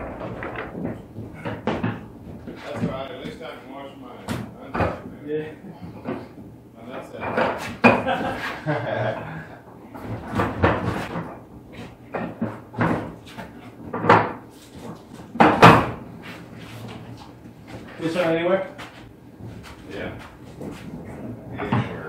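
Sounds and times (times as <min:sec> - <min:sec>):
appliances knocking and banging: 0:00.0 - 0:03.6, 0:04.2 - 0:05.2, 0:05.9 - 0:16.1, 0:19.5 - 0:22.0.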